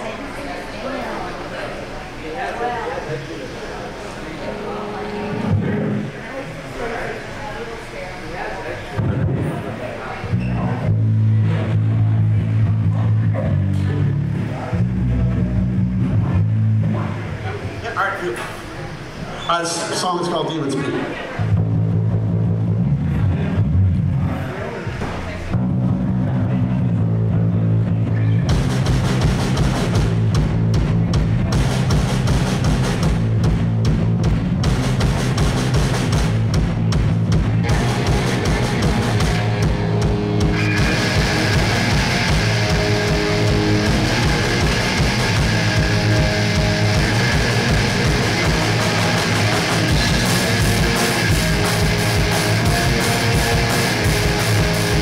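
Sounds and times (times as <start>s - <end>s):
distorted electric guitars: 3.9s - 7.3s, 9.0s - 19.2s, 21.4s - 55.0s
bass guitar: 4.4s - 6.5s, 9.0s - 17.9s, 21.4s - 55.0s
drum kit beat: 28.4s - 55.0s.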